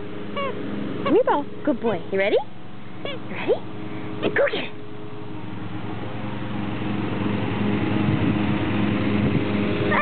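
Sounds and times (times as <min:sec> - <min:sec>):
engine running steadily: 0:00.0 - 0:10.0.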